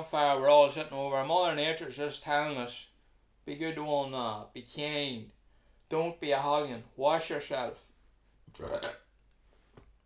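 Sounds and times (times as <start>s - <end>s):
man burping: 8.5s - 9.2s.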